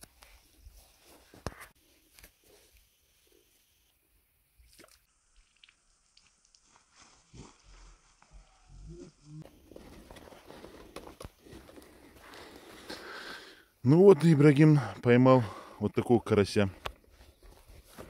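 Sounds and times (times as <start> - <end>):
footsteps on dry grass: 0.2 - 3.0, 6.4 - 8.6, 9.4 - 13.2, 17.0 - 18.0.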